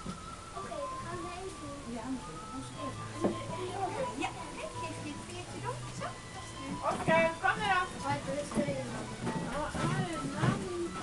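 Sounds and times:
background music: 0:00.0 - 0:11.0
voices: 0:00.5 - 0:11.0.

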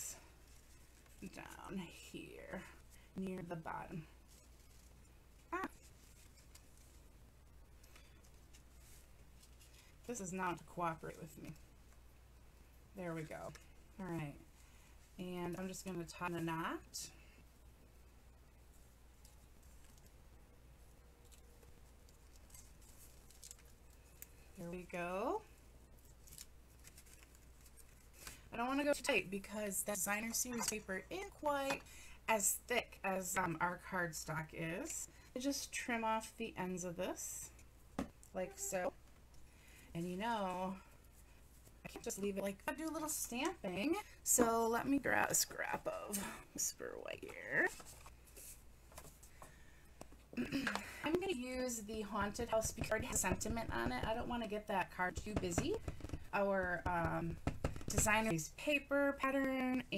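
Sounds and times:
ribbon rustling: 0:00.2 - 0:12.1, 0:18.5 - 0:31.0, 0:47.1 - 0:50.2
cardstock rustling and tapping: 0:52.0 - 0:58.3.

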